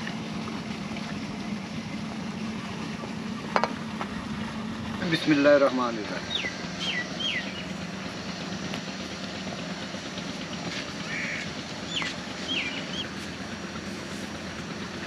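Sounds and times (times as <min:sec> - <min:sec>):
distant engine hum: 0:00.0 - 0:15.0
bird chirps: 0:06.2 - 0:07.8, 0:11.0 - 0:13.2.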